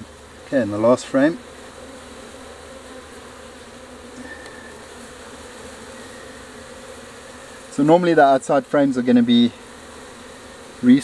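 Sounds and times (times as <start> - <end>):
honeybees buzzing: 0.0 - 11.0.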